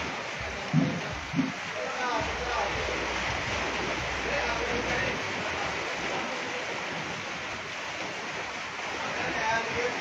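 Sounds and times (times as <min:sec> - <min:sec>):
heavy rain falling: 0:00.0 - 0:10.0.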